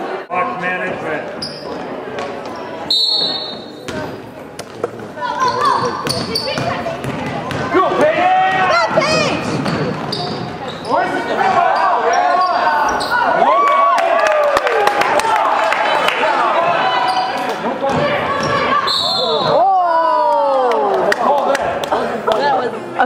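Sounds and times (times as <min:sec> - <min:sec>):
basketball dribbling on wooden floor: 0:06.0 - 0:07.7.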